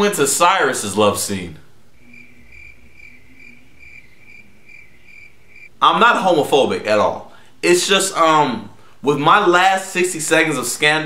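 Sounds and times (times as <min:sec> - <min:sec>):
speech: 0:00.0 - 0:01.7, 0:05.8 - 0:11.0
crickets chirping: 0:01.8 - 0:05.8.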